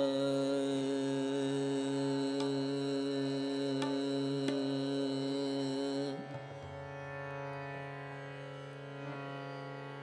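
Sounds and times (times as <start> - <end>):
tanpura drone: 0.0 - 10.0.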